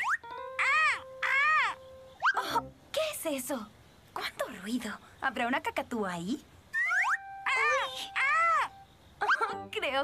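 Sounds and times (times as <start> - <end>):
cockatoo screeching: 0.0 - 2.6, 6.7 - 9.6.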